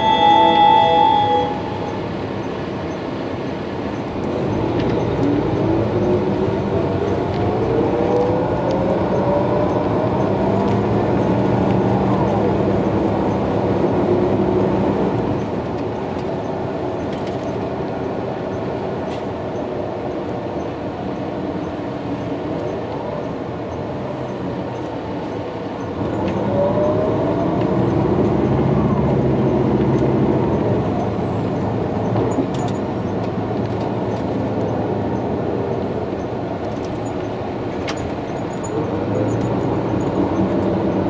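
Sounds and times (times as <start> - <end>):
transmission whine rising: 0.0 - 2.5.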